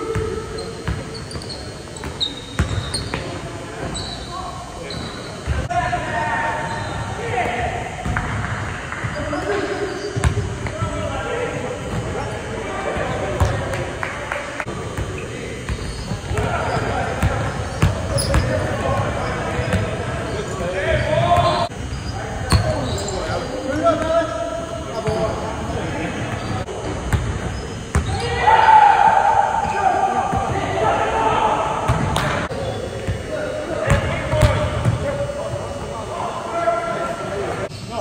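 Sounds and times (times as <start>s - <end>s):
players calling out: 0.0s - 38.0s.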